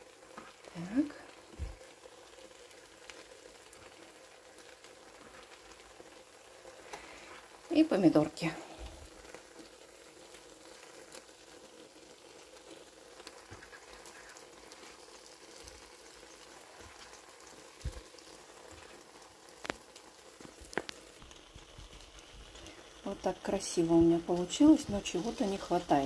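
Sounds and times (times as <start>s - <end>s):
omelette sizzling in a pan: 0.0s - 26.0s.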